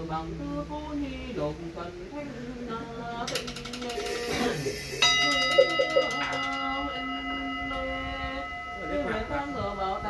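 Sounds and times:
chanted prayer: 0.0s - 10.0s
rolling rattle of knocks: 3.3s - 4.6s
ritual bell ringing: 3.9s - 10.0s.

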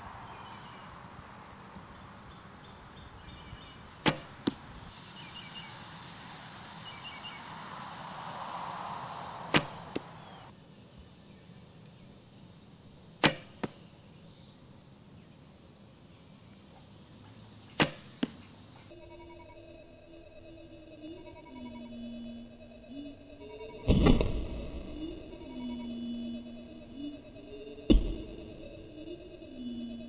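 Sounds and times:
arrow striking target: 4.0s - 4.6s, 9.5s - 10.1s, 13.2s - 13.7s, 17.8s - 18.1s, 23.9s - 24.6s
bowstring snap: 9.5s - 10.0s.

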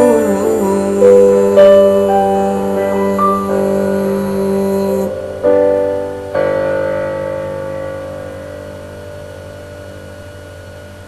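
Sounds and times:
piano chord ringing: 0.0s - 11.0s
steady low hum: 0.0s - 11.0s.

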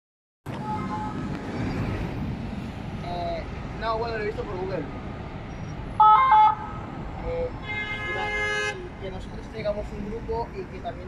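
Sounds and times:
city road traffic: 0.4s - 11.0s.

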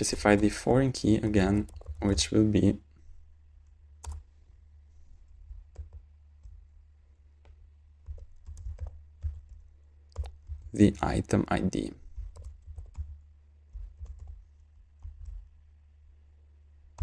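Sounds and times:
faint low hum: 0.0s - 17.0s
keyboard keystrokes: 1.6s - 2.2s, 4.0s - 4.3s, 7.4s - 10.7s, 12.2s - 14.4s.

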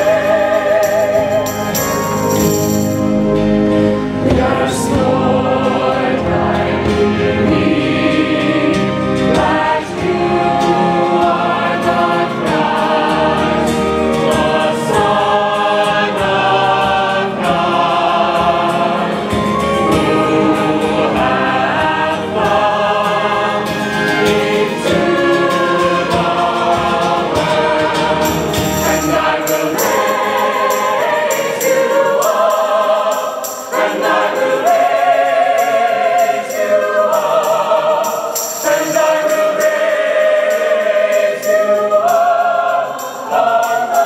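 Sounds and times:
acoustic guitar: 0.0s - 40.3s
mixed choir singing a hymn: 0.0s - 44.0s.

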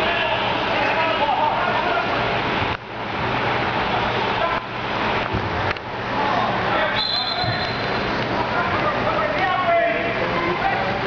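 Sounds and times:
loud indoor din: 0.0s - 11.0s
distant shouting voices: 6.1s - 11.0s.

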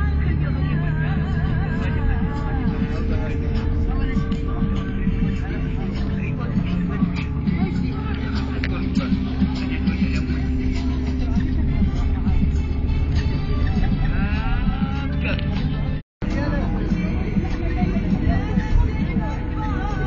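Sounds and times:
music: 0.0s - 20.0s
people's voices: 0.0s - 20.0s
vehicle drone from inside: 0.0s - 20.0s.

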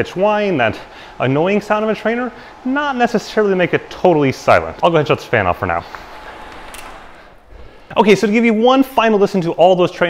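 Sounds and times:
electric fan blowing air: 0.0s - 10.0s.

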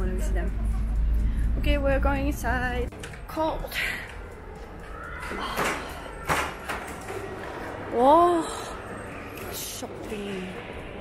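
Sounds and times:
mall ambience hum: 0.0s - 11.0s.

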